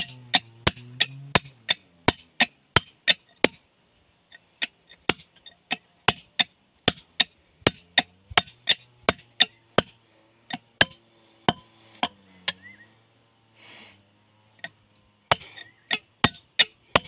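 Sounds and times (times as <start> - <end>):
hammer striking steel chisel: 0.0 - 12.7, 14.6 - 17.0.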